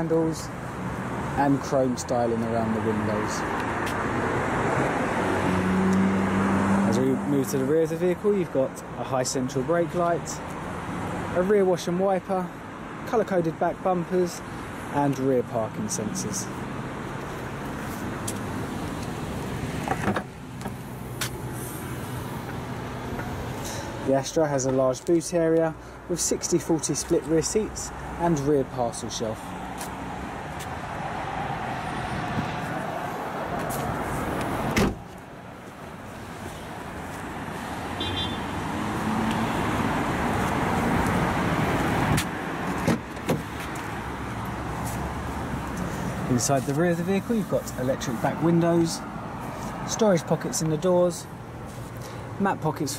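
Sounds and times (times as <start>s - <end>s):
traffic noise: 0.0s - 52.9s
car door latch click: 34.7s - 35.0s
car tailgate slamming: 34.7s - 35.1s.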